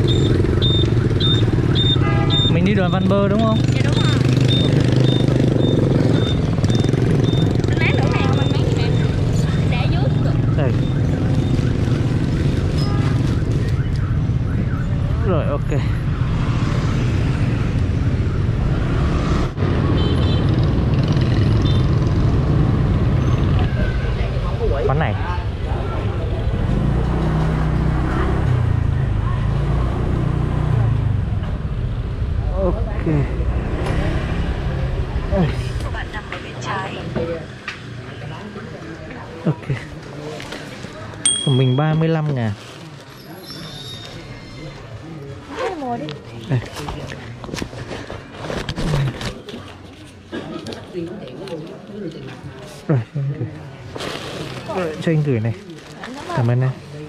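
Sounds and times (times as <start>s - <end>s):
motorbike engine hum: 0.0s - 14.8s
surrounding motorbikes and cars: 0.0s - 57.0s.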